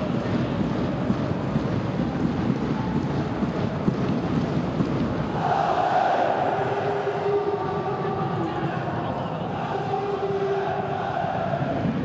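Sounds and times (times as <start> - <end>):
stadium crowd chanting: 5.2 - 12.0.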